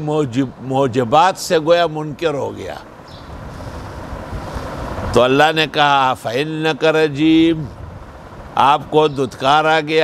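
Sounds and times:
faint hiss: 0.0 - 10.0
low rumbling on microphone: 2.8 - 5.3, 7.2 - 9.4.

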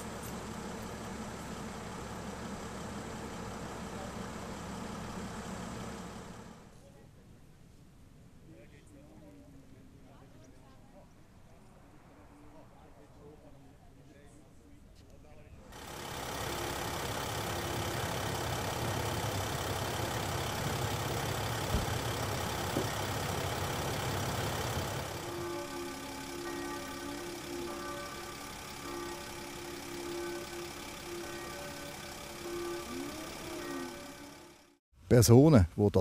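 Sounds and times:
vehicle engine idling: 0.0 - 7.0, 15.7 - 34.8.

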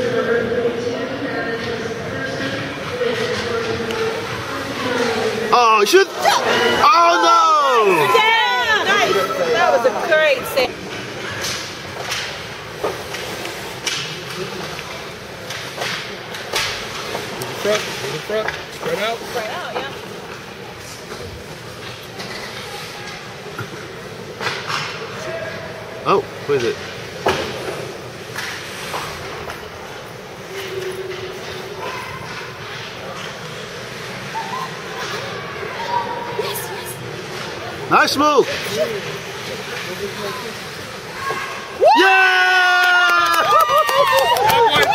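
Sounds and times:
steady background noise: 0.0 - 44.9
skates scraping ice: 1.3 - 42.1
hockey sticks and puck clicks: 10.8 - 25.2, 26.5 - 34.2
skate blades scraping ice: 26.6 - 35.4, 37.1 - 41.8.

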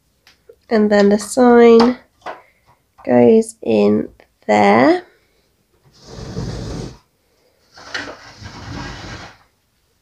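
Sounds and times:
plastic toy scraping on floor: 5.9 - 9.5.

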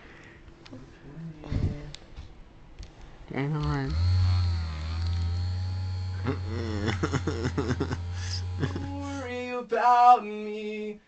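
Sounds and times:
loud steady low hum: 3.9 - 9.2.

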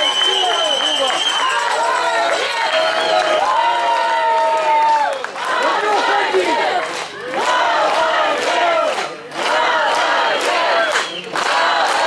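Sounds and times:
crowd shouting and cheering: 0.0 - 12.0
hands clapping: 0.0 - 12.0.

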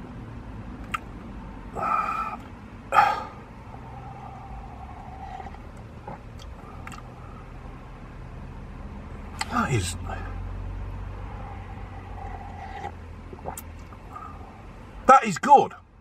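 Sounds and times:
faint low rumble: 0.0 - 8.4
man sipping a drink: 1.7 - 7.2, 11.4 - 14.6.

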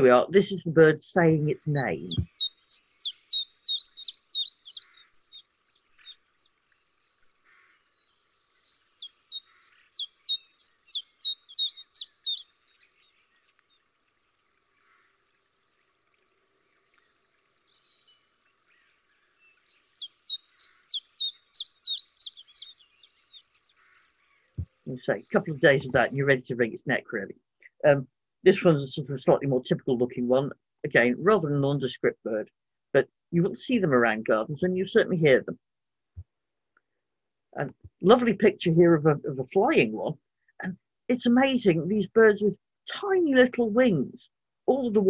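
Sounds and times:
chiffchaff singing: 1.4 - 6.1, 8.9 - 12.5.

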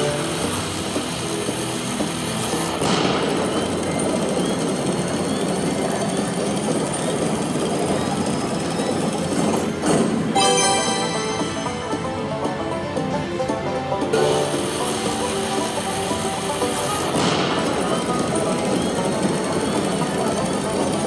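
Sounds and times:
loud blast: 2.8 - 4.8, 16.9 - 19.0.

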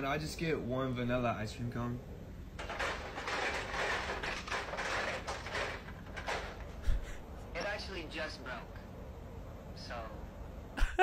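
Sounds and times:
crashing and clattering over intercom: 2.6 - 6.8.

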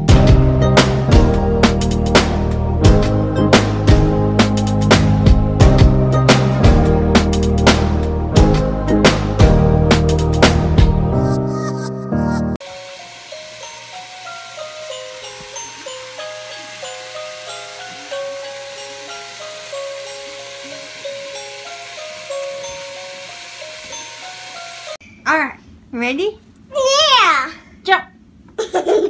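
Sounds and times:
music with bass: 0.0 - 12.6
child's voice and laughter: 11.2 - 12.5, 28.6 - 29.0
tinny electronic melody: 11.2 - 25.0.

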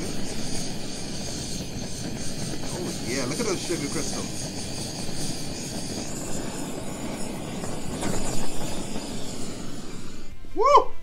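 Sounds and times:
kitchen torch flame hissing: 0.0 - 10.8.

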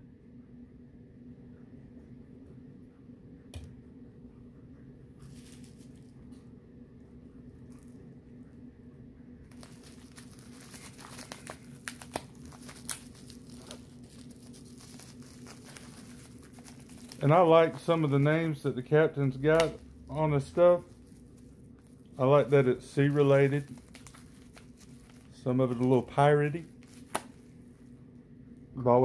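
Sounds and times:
low room hum: 0.0 - 29.0
packaging crinkling and rustling: 5.2 - 6.4, 9.5 - 27.9.

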